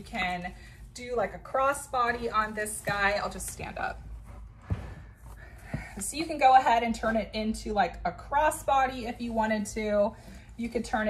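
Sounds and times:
clothing and bag rustling: 2.0s - 6.1s.

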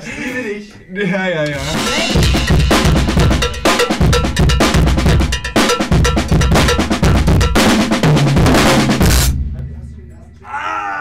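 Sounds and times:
drum kit played hard and fast: 1.5s - 10.2s.

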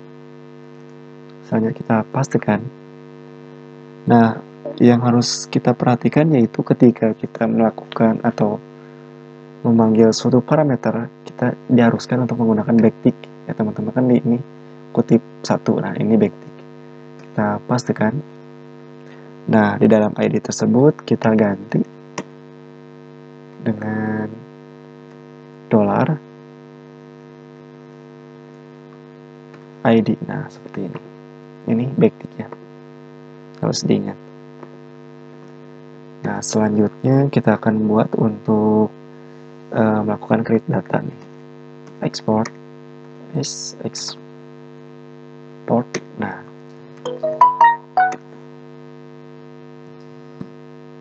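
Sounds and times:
electrical mains hum: 0.0s - 51.0s
person speaking: 4.1s - 8.2s, 47.1s - 48.2s.

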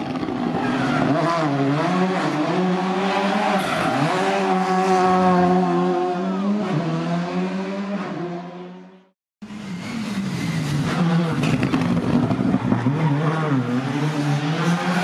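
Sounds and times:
rally car engine revving: 0.0s - 15.0s.

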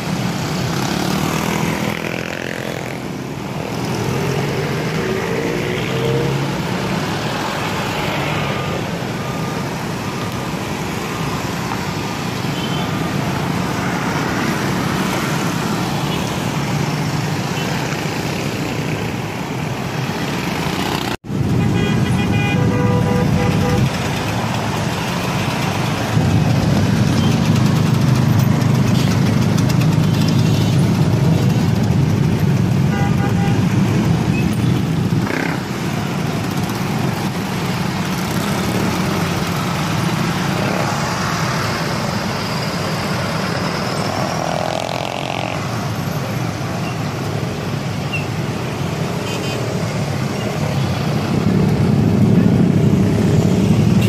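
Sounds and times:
motorcycle and vehicle engines: 0.0s - 54.0s
car horns: 21.5s - 24.0s, 32.9s - 33.7s.

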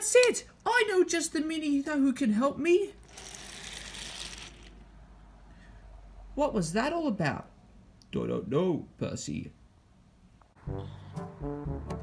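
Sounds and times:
toy wheels rattling on wooden floor: 3.0s - 4.8s.

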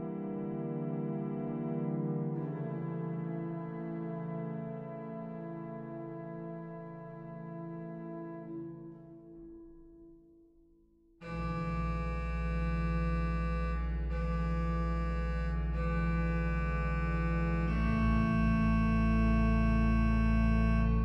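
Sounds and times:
pipe organ chords: 0.0s - 9.2s, 11.2s - 21.0s.

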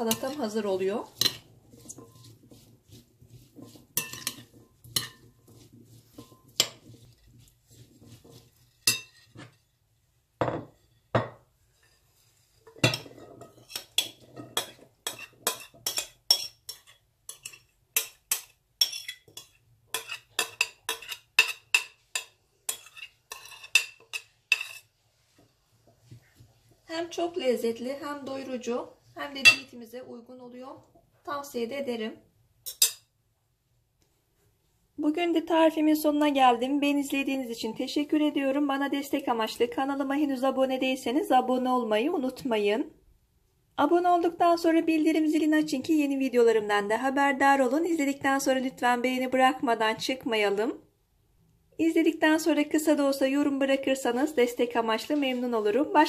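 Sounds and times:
metal spoon clinking glass bowl: 3.6s - 7.0s, 8.3s - 9.5s, 12.7s - 24.8s, 29.4s - 29.7s, 32.6s - 33.1s.

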